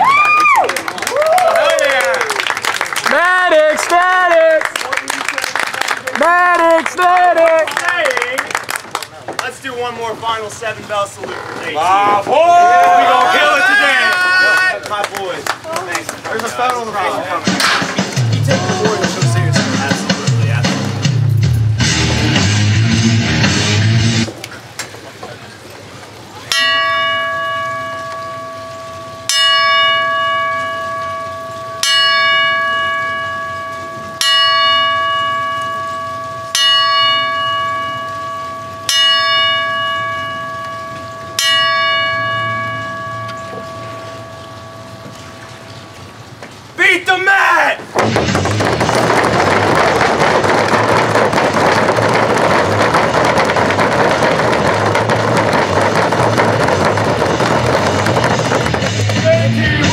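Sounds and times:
crowd clapping and slapping: 0.0 - 9.9, 12.6 - 21.1, 47.9 - 59.9
ring bell strikes: 26.5 - 46.1.

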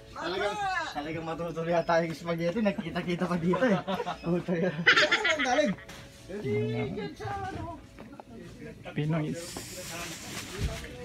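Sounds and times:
high hiss: 9.3 - 10.7.

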